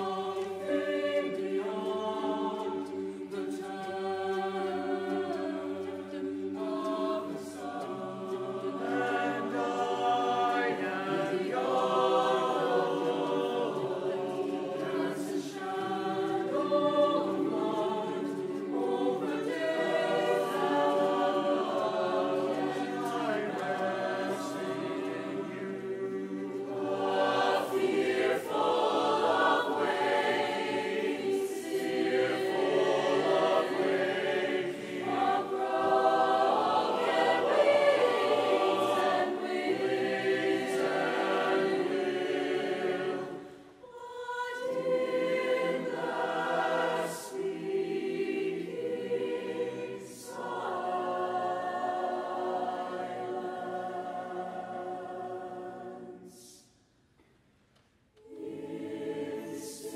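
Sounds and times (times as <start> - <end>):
mixed choir singing: 0.0 - 56.8, 58.2 - 59.9.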